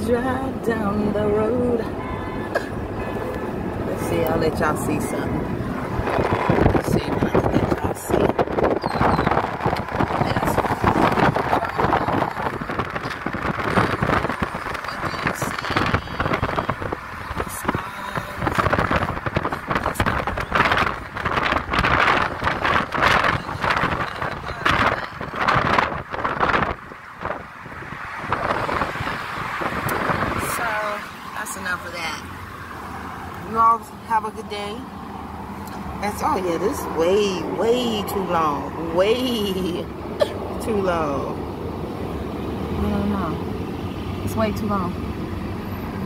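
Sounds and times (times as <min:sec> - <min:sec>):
road noise: 0:00.0 - 0:46.0
wind buffeting microphone: 0:01.8 - 0:31.3.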